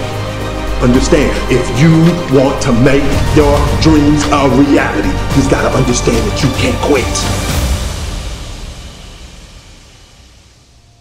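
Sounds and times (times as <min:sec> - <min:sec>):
hiss-like noise wash: 0:07.6 - 0:11.0.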